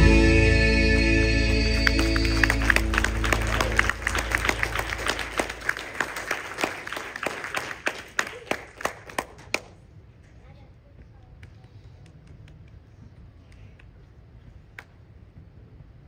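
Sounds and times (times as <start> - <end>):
held chord of gospel accompaniment: 0.0 - 6.2
congregation applauding: 0.0 - 9.8.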